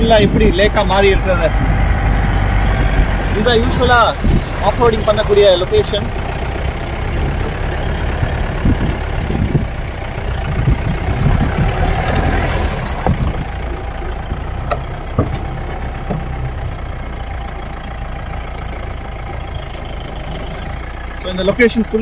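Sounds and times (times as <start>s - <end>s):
off-road vehicle engine running: 0.0s - 22.0s
vehicle body knocks and rattles: 10.4s - 17.2s.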